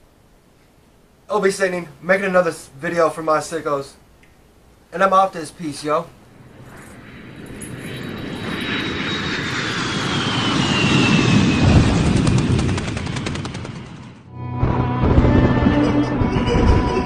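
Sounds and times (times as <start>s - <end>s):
rush of noise: 6.2s - 17.0s
music: 14.3s - 17.0s.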